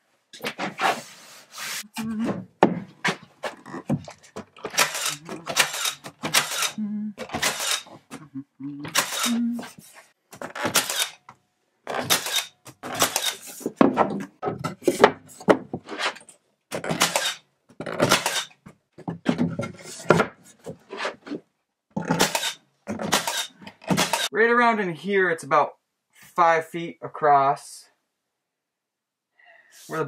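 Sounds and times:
wooden boards scraping and knocking: 0.4 - 6.6, 11.9 - 24.3.

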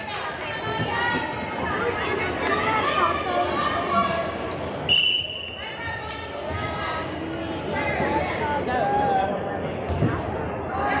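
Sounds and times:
people's voices in a gym: 0.0 - 11.0
referee's whistle blast: 4.9 - 5.6.

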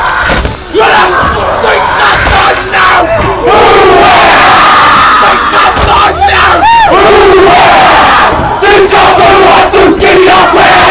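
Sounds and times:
boys shouting chant in unison: 0.0 - 10.9
low thuds: 5.6 - 6.2.

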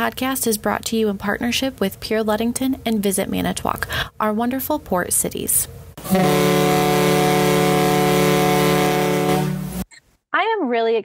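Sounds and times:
ship's horn blast: 6.0 - 9.9.

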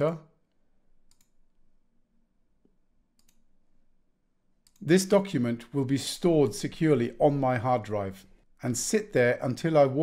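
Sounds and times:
faint computer mouse clicks: 1.1 - 1.4, 3.2 - 3.4.

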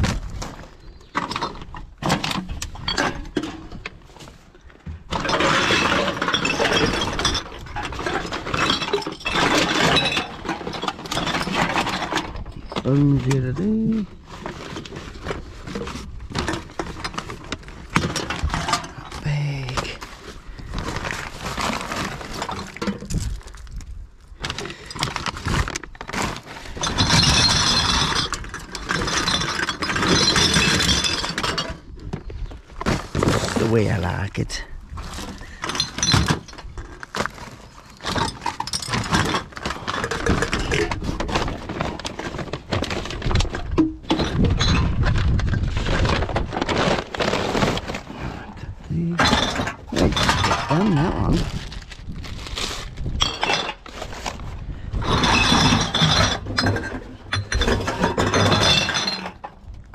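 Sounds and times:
paper bags rustling: 12.7 - 27.5, 32.5 - 43.8, 45.0 - 55.8
cans and bottles clinking: 55.0 - 59.8.

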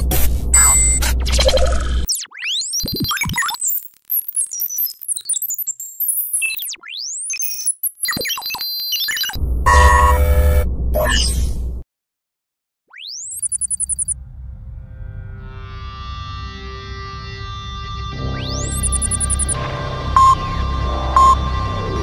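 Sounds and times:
electronic chirps and beeps: 0.6 - 10.4, 12.9 - 14.2, 18.4 - 19.6, 20.2 - 20.4, 21.1 - 22.0
rising synth sweep: 14.9 - 22.0
loud deep burst: 19.6 - 22.0.

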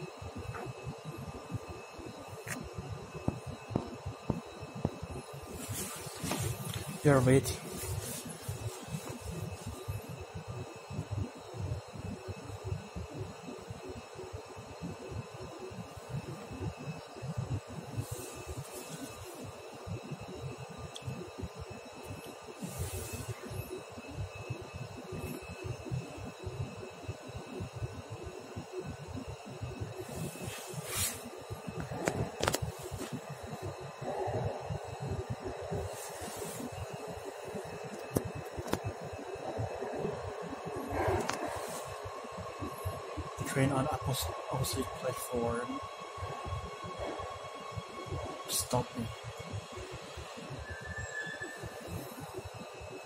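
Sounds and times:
faint steady tones: 0.0 - 53.0
ventilation hum: 0.0 - 53.0
soft hisses: 5.5 - 9.9, 30.0 - 33.7, 35.7 - 38.0.

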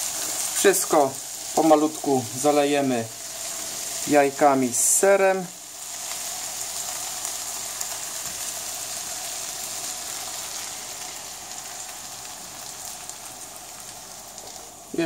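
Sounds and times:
food sizzling in a frying pan: 0.0 - 15.0.

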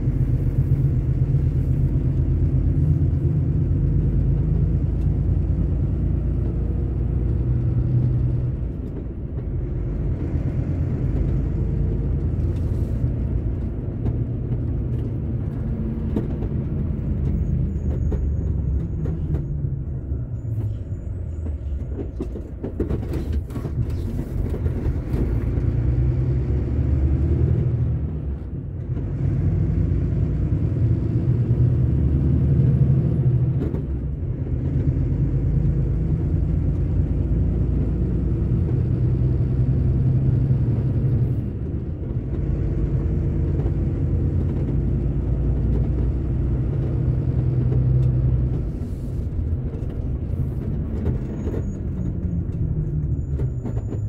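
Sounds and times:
truck engine running: 0.0 - 26.2
road noise: 0.0 - 54.0.

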